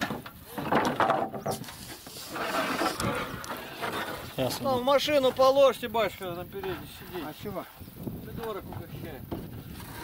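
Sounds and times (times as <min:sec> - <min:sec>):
wood scraping and knocking: 0:00.0 - 0:10.0.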